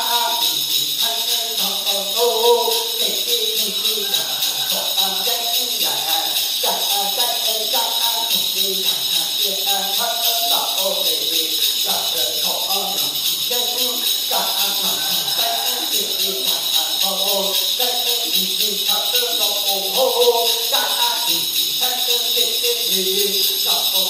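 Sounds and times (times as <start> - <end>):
metal rattle and bells jingling: 0.0 - 24.0
person chanting: 0.0 - 24.0.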